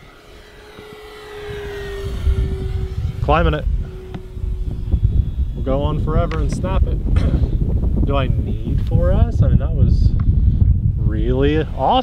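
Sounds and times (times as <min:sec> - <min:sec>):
electric motor and propeller whine: 0:00.0 - 0:12.0
low rumble: 0:00.0 - 0:12.0.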